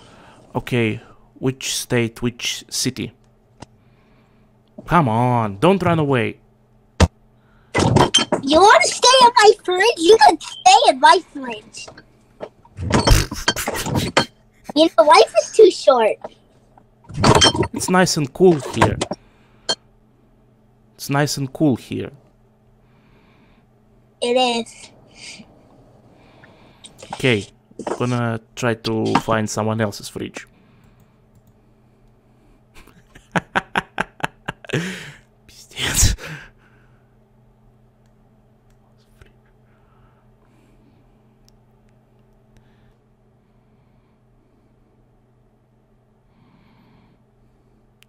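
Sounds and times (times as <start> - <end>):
faint electrical hum: 0.0 - 48.0
click: 30.9 - 32.2
man exhaling breathily: 34.7 - 35.2.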